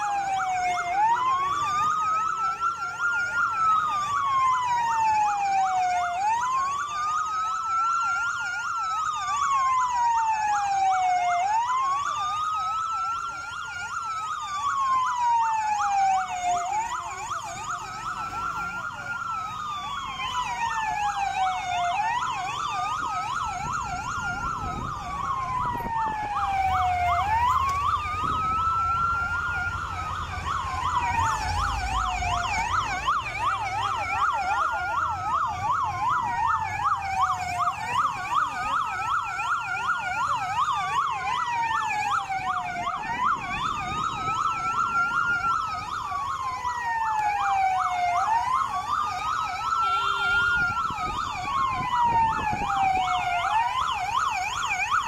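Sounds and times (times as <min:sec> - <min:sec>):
siren wailing: 0:00.0 - 0:55.0
siren yelping: 0:00.0 - 0:55.0.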